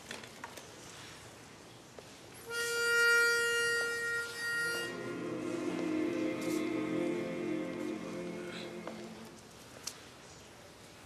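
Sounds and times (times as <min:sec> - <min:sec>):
pitch pipe reedy note: 0:02.5 - 0:09.0
men's chorus singing held notes: 0:04.4 - 0:09.7.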